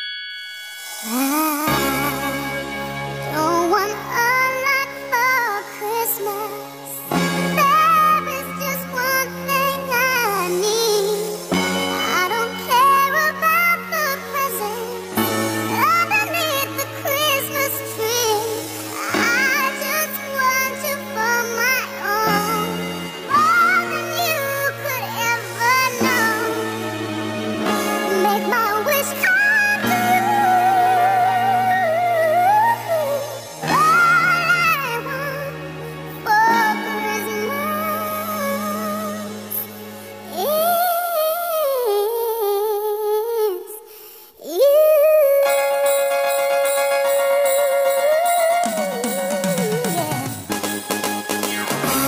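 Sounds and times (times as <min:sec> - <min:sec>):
sustained musical accompaniment: 0:00.7 - 0:42.2
person singing sustained notes: 0:00.8 - 0:05.2
high-pitched singing voice: 0:01.0 - 0:02.6, 0:03.3 - 0:27.0, 0:27.6 - 0:50.5.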